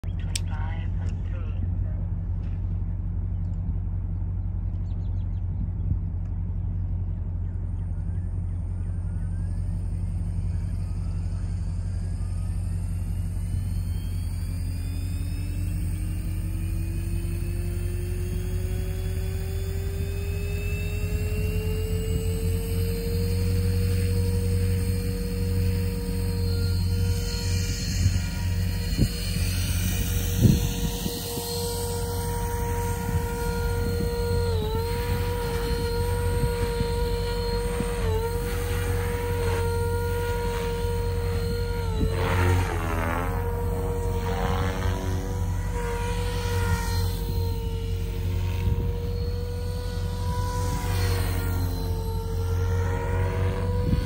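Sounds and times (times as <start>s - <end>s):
low rumble: 0.0s - 15.2s
helicopter motor and rotor whine: 0.0s - 54.0s.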